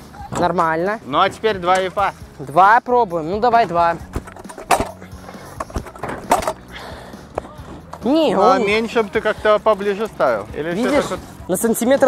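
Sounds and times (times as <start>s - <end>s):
scooter wheels scraping and rolling: 3.6s - 6.7s.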